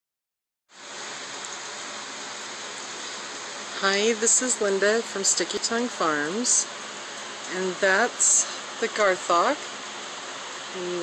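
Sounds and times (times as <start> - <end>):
steady even hiss: 0.8 - 11.0.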